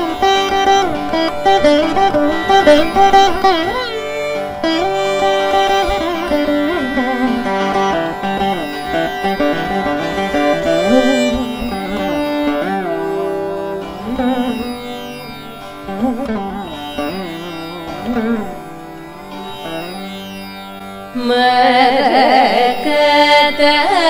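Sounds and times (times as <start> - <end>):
veena melody: 0.0 - 24.0
violin melody: 0.0 - 24.0.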